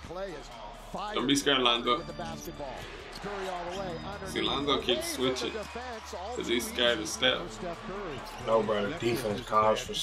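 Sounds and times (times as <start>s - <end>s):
sports commentary: 0.0s - 10.0s.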